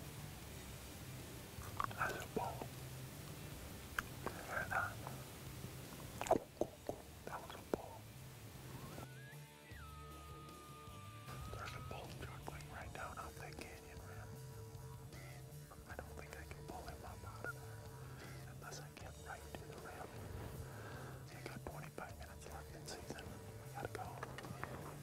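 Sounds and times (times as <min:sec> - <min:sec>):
elk bugling whistle: 0:08.8 - 0:12.2.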